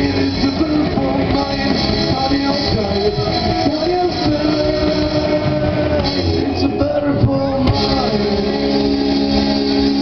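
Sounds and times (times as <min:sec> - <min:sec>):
electric guitars sustained notes: 0:00.0 - 0:10.0
live rock band playing: 0:00.0 - 0:10.0.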